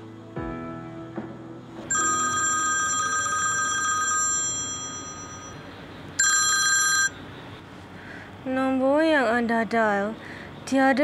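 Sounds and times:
telephone ringing: 0:01.9 - 0:05.6, 0:06.2 - 0:07.4.

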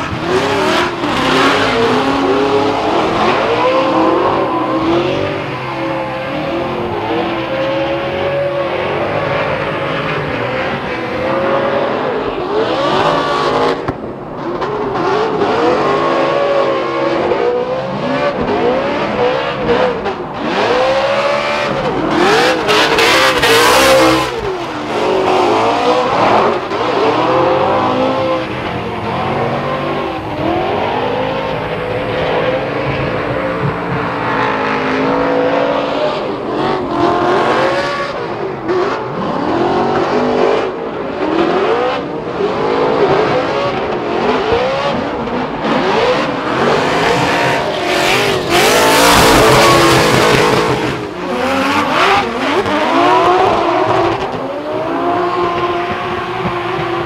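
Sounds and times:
car engines revving: 0:00.0 - 0:57.0.

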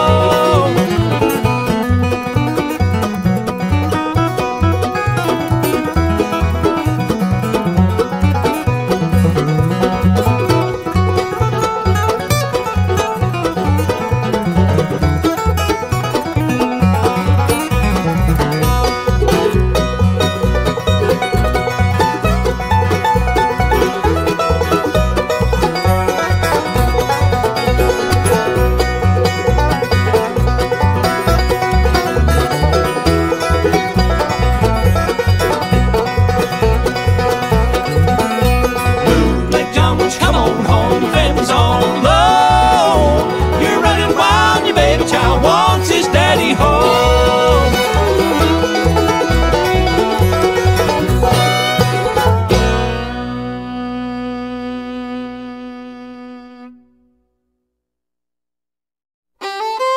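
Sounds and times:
banjo: 0:00.0 - 0:55.6
string bass line: 0:00.0 - 0:57.2, 0:59.4 - 0:59.9
guitar: 0:00.0 - 0:57.3, 0:59.4 - 0:59.9.

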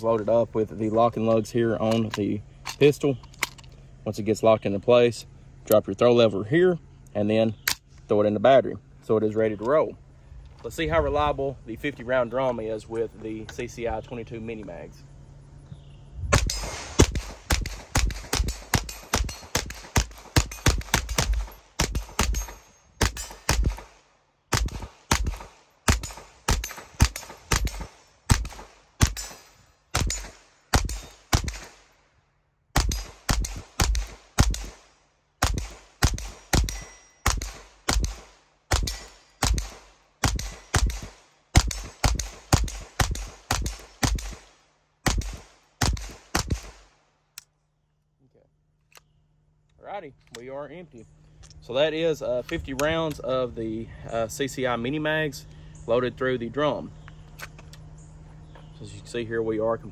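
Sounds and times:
pistol gunshots: 0:16.3 - 0:31.9, 0:32.7 - 0:47.0.

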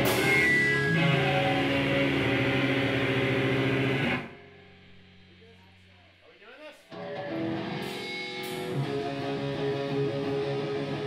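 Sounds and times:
distorted heavy guitar music: 0:00.0 - 0:05.8, 0:06.9 - 0:11.0
faint low hum: 0:01.9 - 0:06.9.

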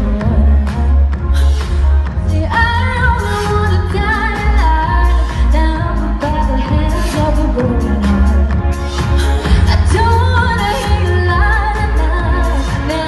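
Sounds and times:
heavy bass beat: 0:00.0 - 0:13.0
loud live pop music: 0:00.0 - 0:13.0
woman singing: 0:00.0 - 0:13.0.

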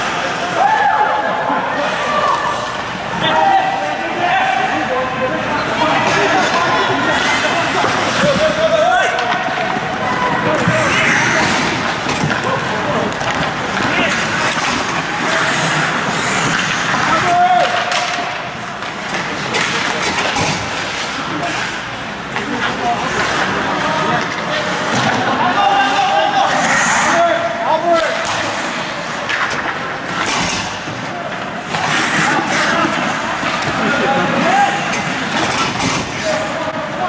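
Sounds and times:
players calling out: 0:00.0 - 0:20.0, 0:20.7 - 0:30.2, 0:30.8 - 0:35.5
skates scraping on ice: 0:01.8 - 0:37.0.

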